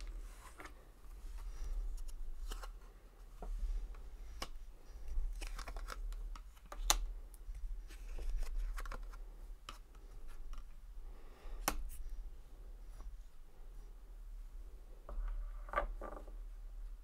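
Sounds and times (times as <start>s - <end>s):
cards being shuffled: 0.0s - 2.8s, 4.3s - 7.0s, 7.8s - 10.7s.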